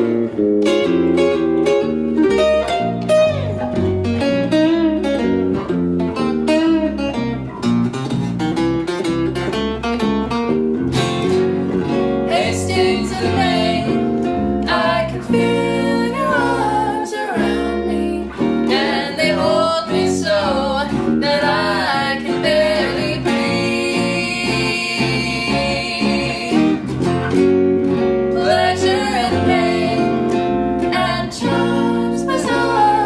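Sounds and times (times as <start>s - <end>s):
electric bass: 0.0s - 33.0s
strummed electric guitar: 0.0s - 33.0s
woman singing lead vocal: 12.3s - 26.8s, 28.4s - 33.0s.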